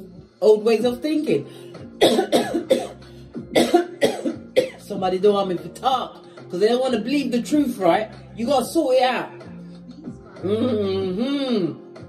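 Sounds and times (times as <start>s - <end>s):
woman coughing: 2.0s - 4.9s.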